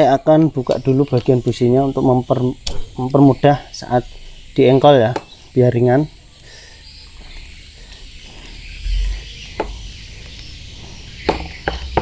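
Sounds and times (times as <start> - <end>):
insect chirring: 0.0 - 12.0.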